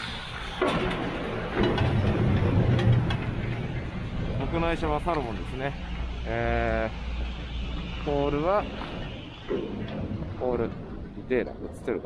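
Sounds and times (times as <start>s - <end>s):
chairlift machinery low rumble: 0.0s - 12.0s
chair clanking over wheels: 0.5s - 5.9s.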